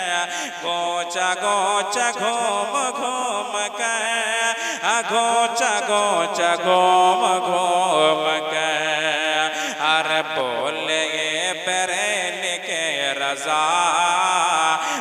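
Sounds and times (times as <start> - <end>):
man singing devotional song: 0.0 - 15.0.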